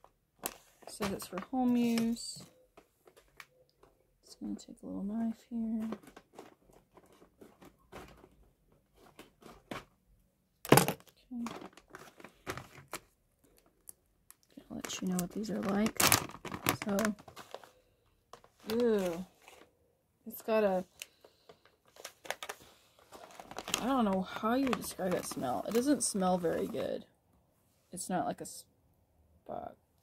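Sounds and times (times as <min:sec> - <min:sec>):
plastic pouch crinkling: 0:05.7 - 0:08.4, 0:10.7 - 0:19.7, 0:20.9 - 0:26.8.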